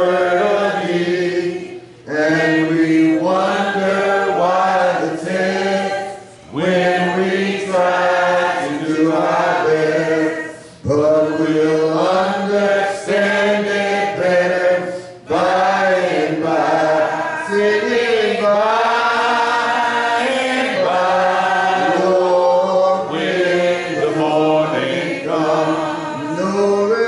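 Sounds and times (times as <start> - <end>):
congregation singing a hymn: 0.0 - 27.0.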